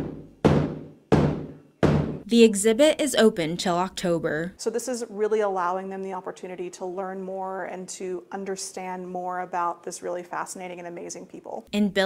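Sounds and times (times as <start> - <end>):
large drum beats: 0.0 - 2.2.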